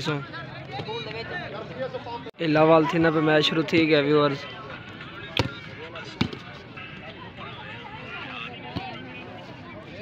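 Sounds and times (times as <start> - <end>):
low chatter of onlookers: 0.0 - 10.0.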